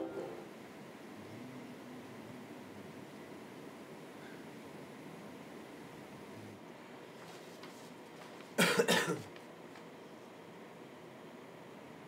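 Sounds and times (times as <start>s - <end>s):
faint background hiss: 0.0s - 12.0s
person coughing: 8.6s - 9.3s.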